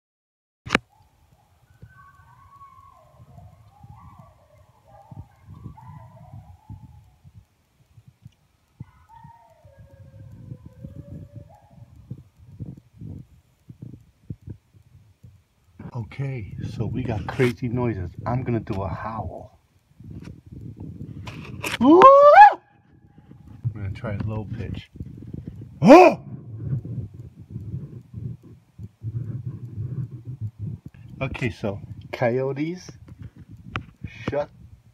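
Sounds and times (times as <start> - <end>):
low irregular crackling: 0.7 - 34.9
coyotes howling and yipping: 0.8 - 7.3, 8.7 - 12.5, 21.8 - 22.9
low rumbling microphone noise: 1.7 - 34.9
man howling: 9.4 - 11.6, 21.8 - 22.6, 25.8 - 26.4.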